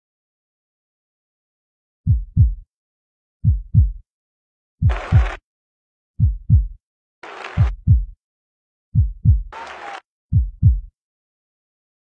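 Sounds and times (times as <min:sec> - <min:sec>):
heartbeat thumps: 0:02.1 - 0:02.6, 0:03.4 - 0:04.0, 0:04.8 - 0:05.4, 0:06.2 - 0:06.8, 0:07.6 - 0:08.2, 0:08.9 - 0:09.5, 0:10.3 - 0:11.0.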